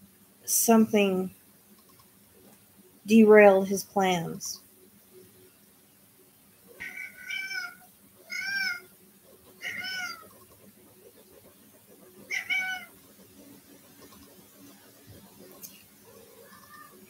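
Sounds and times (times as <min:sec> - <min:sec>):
cat meowing: 0:06.8 - 0:08.9, 0:09.6 - 0:10.3, 0:12.3 - 0:12.9, 0:16.4 - 0:17.0.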